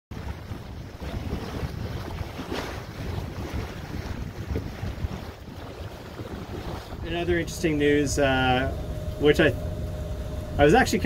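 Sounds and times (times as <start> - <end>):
wind buffeting microphone: 0.1 - 9.2
water washing: 0.1 - 9.6.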